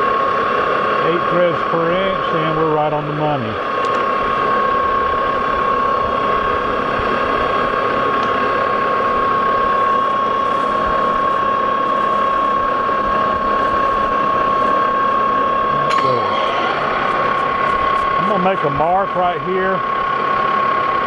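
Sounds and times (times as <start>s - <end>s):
metal lathe whining: 0.0s - 21.0s.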